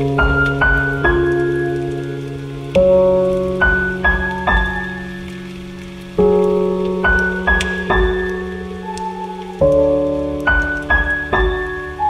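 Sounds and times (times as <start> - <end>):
faint steady hiss: 0.0 - 12.0
slow soft piano music: 0.0 - 12.0.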